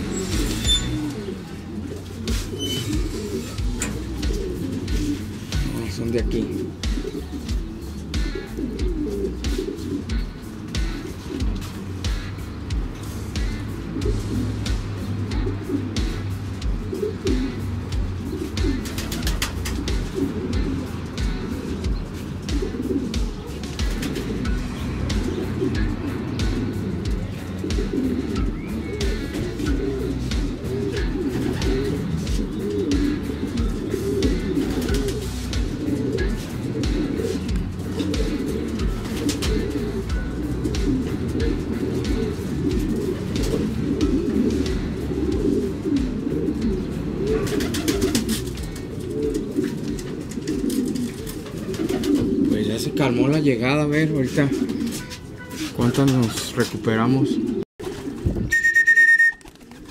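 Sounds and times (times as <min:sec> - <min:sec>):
pigeons cooing: 0:00.0 - 0:59.9.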